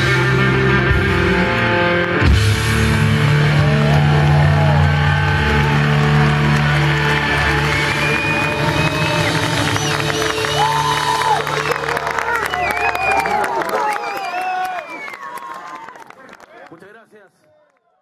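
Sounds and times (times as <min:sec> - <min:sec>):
rock band chord: 0:00.0 - 0:09.8
electric guitars and bass ringing: 0:00.0 - 0:12.2
crowd whistling and shouting: 0:03.1 - 0:16.1.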